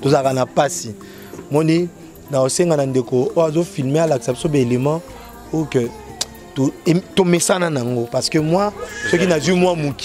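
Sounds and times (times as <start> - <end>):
man speaking animatedly: 0.0 - 0.9, 1.6 - 5.9, 6.6 - 10.0.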